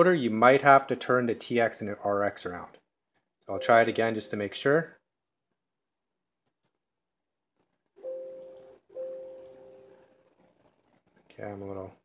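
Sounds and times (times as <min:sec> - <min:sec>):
computer error alert chime: 0:03.6 - 0:04.4.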